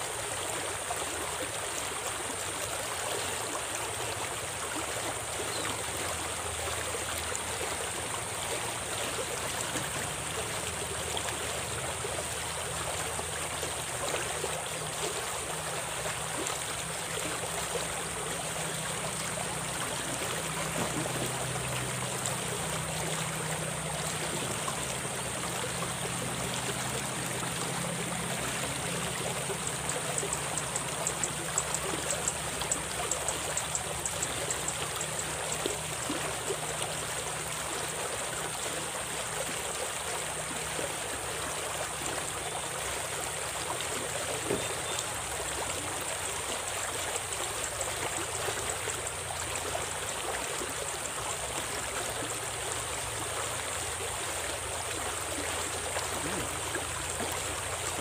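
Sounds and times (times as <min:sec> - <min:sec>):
stream rushing and splashing: 0:00.0 - 0:58.0
rapid high ticks: 0:29.5 - 0:35.7.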